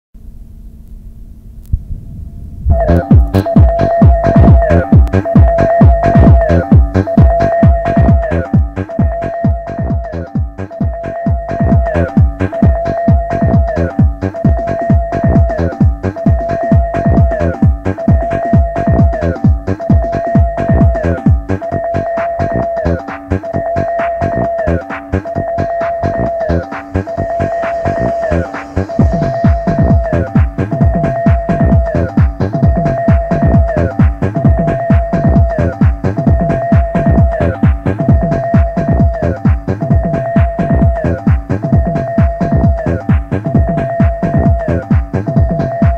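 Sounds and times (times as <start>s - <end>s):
held synth tone: 2.1s - 45.9s
kick drum: 2.7s - 22.5s, 28.9s - 45.9s.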